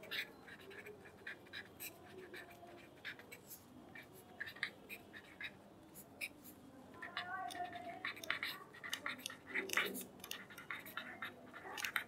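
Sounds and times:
pen scratching on paper: 0.0s - 12.0s.

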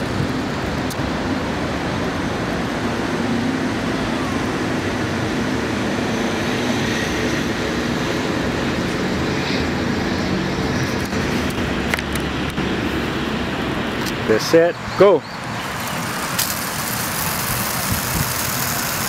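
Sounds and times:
outdoor background rush: 0.0s - 19.0s.

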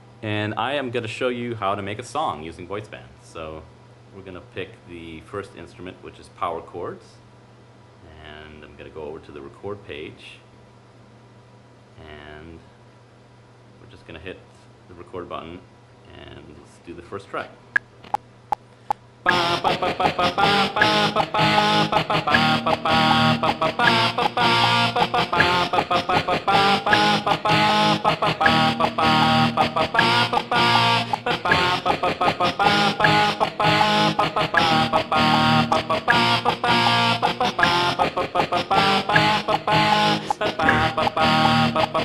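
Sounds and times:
electric guitar power chords: 19.3s - 42.0s.

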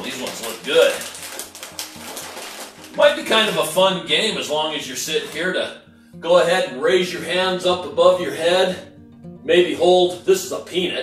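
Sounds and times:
plastic snack bag crinkling: 0.0s - 3.5s.

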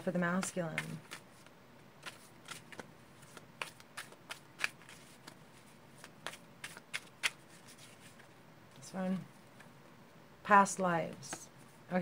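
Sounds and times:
cards being shuffled: 0.4s - 8.3s.

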